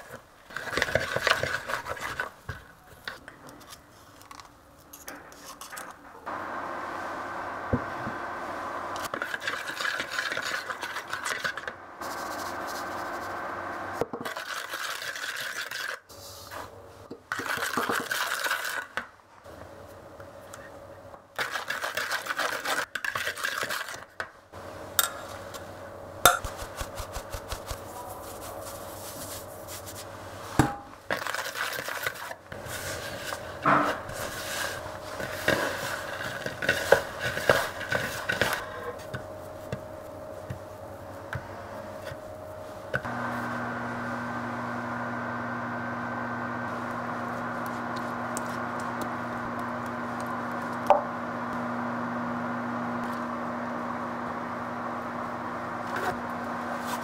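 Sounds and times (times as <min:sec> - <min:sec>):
whisk scraping a glass bowl: 0:00.5 - 0:02.4, 0:09.1 - 0:13.2, 0:31.2 - 0:39.2.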